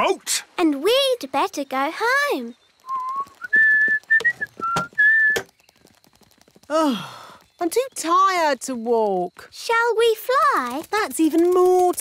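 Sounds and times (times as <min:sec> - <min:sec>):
man whistling a tune: 0:02.9 - 0:05.5.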